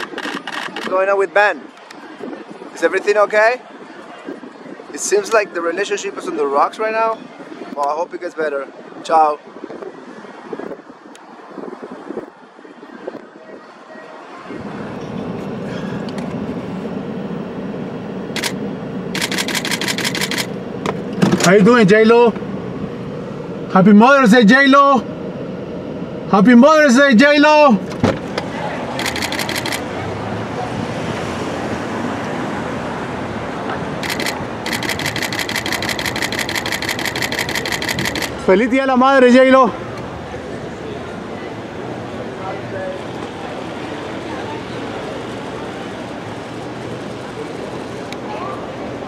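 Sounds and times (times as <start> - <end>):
camera shutter clicks: 0.0 - 0.9, 18.4 - 18.6, 19.2 - 20.6, 29.0 - 29.8, 34.0 - 38.4
street traffic: 0.0 - 49.0.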